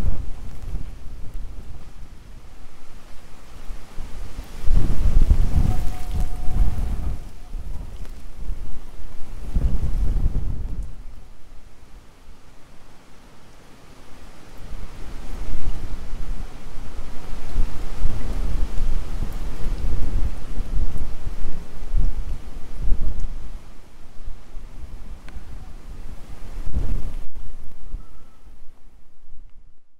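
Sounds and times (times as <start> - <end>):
rain: 0.0 - 29.8
wind: 0.0 - 29.9
thunder rumbling: 4.0 - 11.1.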